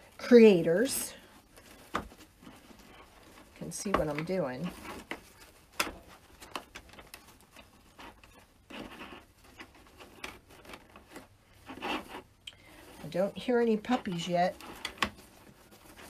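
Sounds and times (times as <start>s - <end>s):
ribbon rustling: 0.0s - 16.0s.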